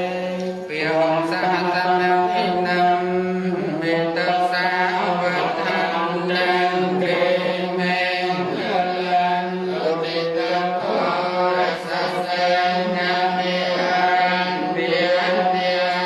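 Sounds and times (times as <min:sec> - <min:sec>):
monks chanting in unison: 0:00.0 - 0:16.0.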